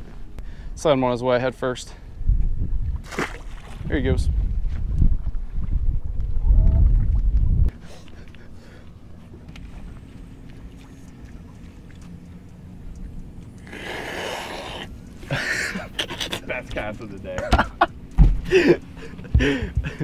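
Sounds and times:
wind buffeting microphone: 0:02.1 - 0:07.7
faint steady low hum: 0:07.7 - 0:20.0.

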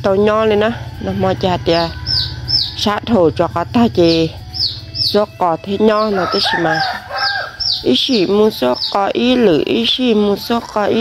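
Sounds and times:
chicks peeping: 0:00.9 - 0:11.0
person talking: 0:02.8 - 0:04.4, 0:05.1 - 0:07.0, 0:07.9 - 0:11.0.

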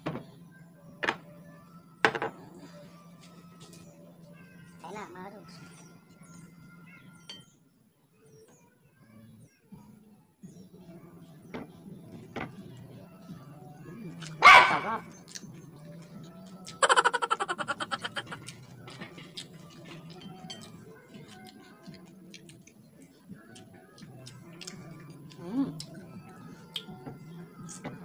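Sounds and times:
faint background music: 0:00.0 - 0:28.0
loud dog bark: 0:14.4 - 0:15.0
eating clicks: 0:16.4 - 0:18.7, 0:23.5 - 0:26.0.

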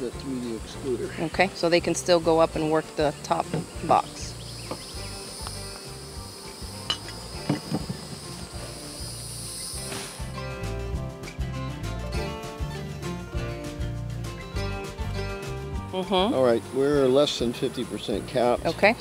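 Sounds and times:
insects chirring: 0:00.0 - 0:11.6, 0:16.5 - 0:19.0
music with steady beat: 0:02.5 - 0:19.0.

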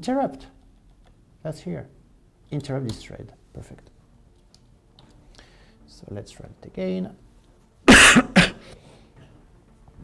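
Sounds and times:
man coughing: 0:07.9 - 0:08.7.

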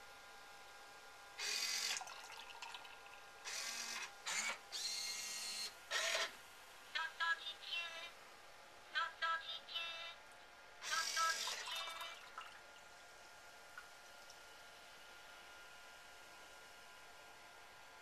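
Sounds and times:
robot motors whirring: 0:03.5 - 0:06.3, 0:10.8 - 0:11.6.

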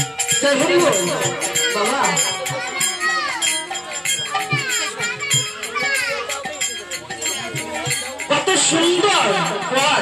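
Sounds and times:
drum beating: 0:00.0 - 0:10.0
hand cymbals clashing: 0:00.0 - 0:10.0.

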